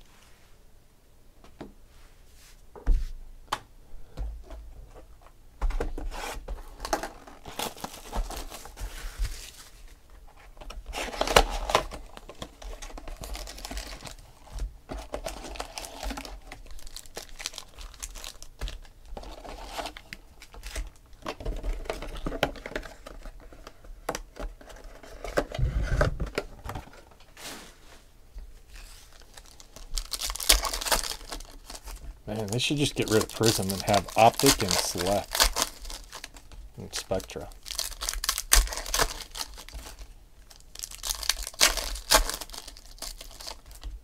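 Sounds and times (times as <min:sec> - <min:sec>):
card packs crinkling and tearing: 0:06.5 - 0:10.0, 0:10.6 - 0:27.2, 0:28.8 - 0:44.0.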